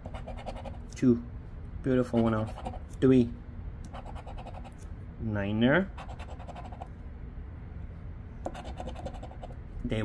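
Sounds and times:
coin scratching a lottery ticket: 0.0s - 0.8s, 2.0s - 2.9s, 3.9s - 4.8s, 6.0s - 6.9s, 8.5s - 9.6s.

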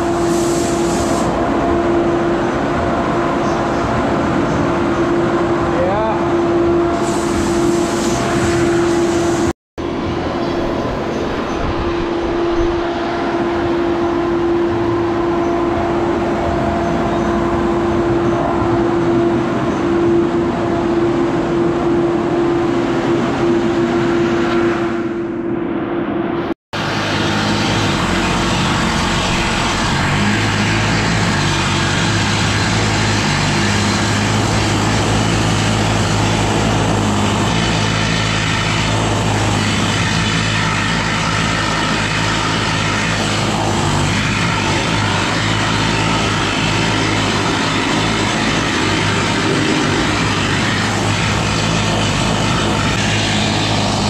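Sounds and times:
deep machinery drone: 0.0s - 54.0s
machinery humming: 0.0s - 54.0s.

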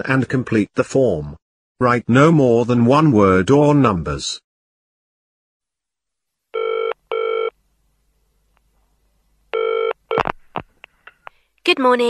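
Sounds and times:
telephone ringing: 6.6s - 7.5s, 9.6s - 10.2s.

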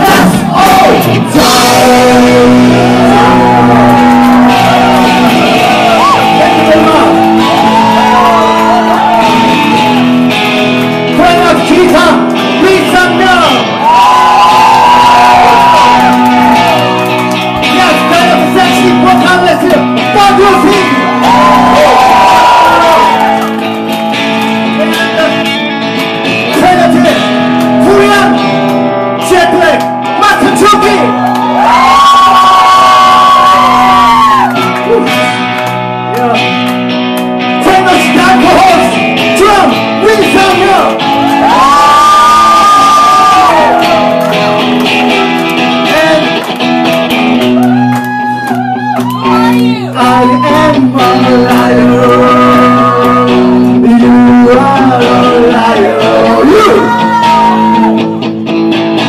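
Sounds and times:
shouted vocals: 0.0s - 10.3s, 12.8s - 23.6s, 37.9s - 44.6s, 47.5s - 58.2s
electric bass: 0.0s - 59.0s
punk rock band playing: 0.0s - 59.0s
singer shouting long note: 54.0s - 58.0s.

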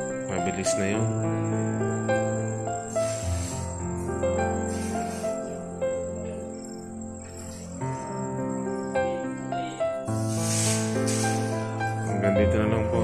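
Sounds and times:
music of held notes: 0.0s - 13.0s
hiss: 2.2s - 6.2s, 10.1s - 12.2s.

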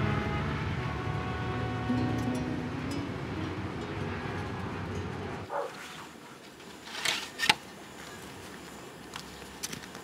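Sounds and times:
bus interior rumble: 0.0s - 6.3s.

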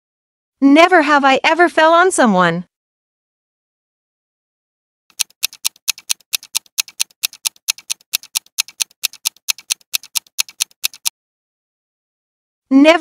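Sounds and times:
rapid clock ticks: 5.1s - 11.1s.

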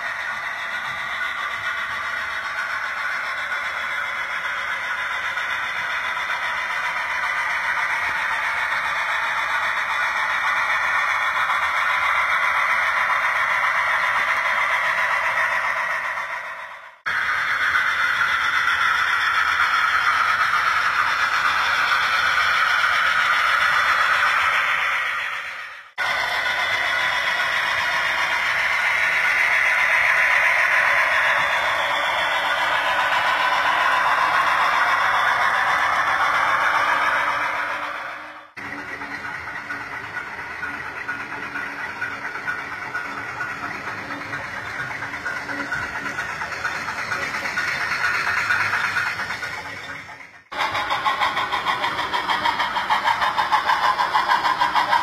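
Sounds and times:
model train wheels rattling on rails: 0.0s - 55.0s.

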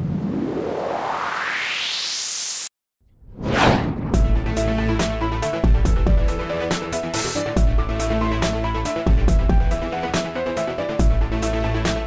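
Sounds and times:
falling whoosh: 0.0s - 4.6s.

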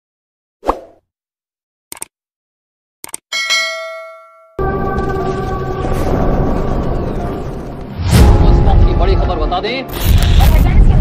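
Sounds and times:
quick clicks: 1.9s - 2.1s, 3.0s - 3.2s
bell chime: 3.3s - 5.0s.

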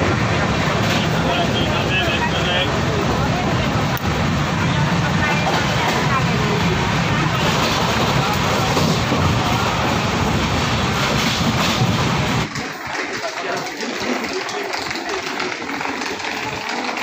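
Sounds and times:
indistinct voices: 0.0s - 17.0s
train rumbling inside coach: 0.0s - 17.0s.

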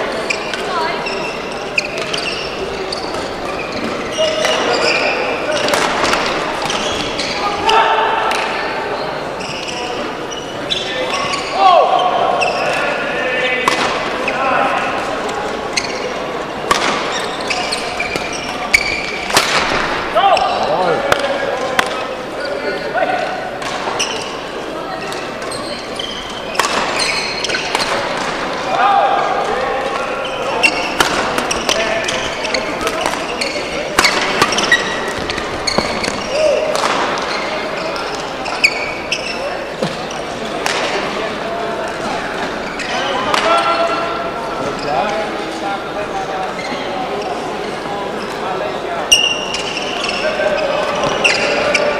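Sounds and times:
shoes squeaking on court floor: 0.0s - 28.6s, 29.3s - 51.9s
voices in a large hall: 0.0s - 51.9s.

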